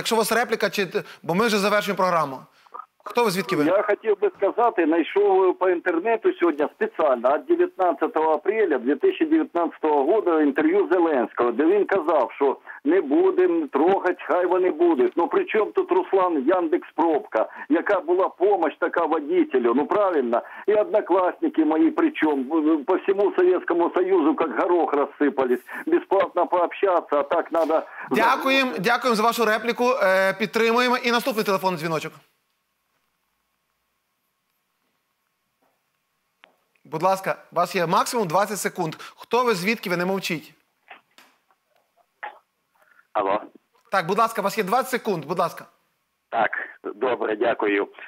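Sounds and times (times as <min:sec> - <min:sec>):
caller talking over telephone: 0:02.8 - 0:29.9, 0:46.3 - 0:48.0.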